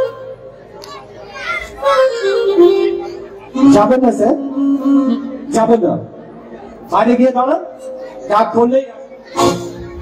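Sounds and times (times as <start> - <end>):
stage music: 0.0 - 10.0
children calling out: 0.7 - 3.5, 9.0 - 10.0.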